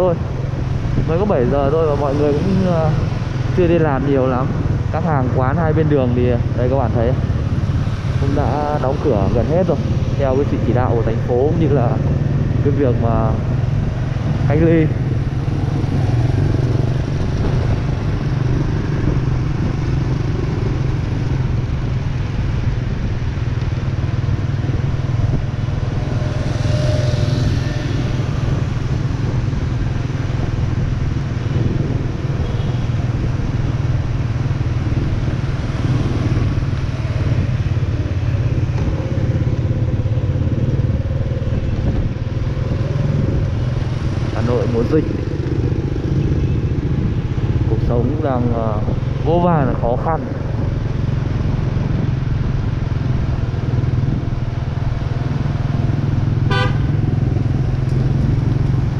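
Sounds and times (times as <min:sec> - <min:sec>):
motorbike engine and road noise: 0:00.0 - 0:58.9.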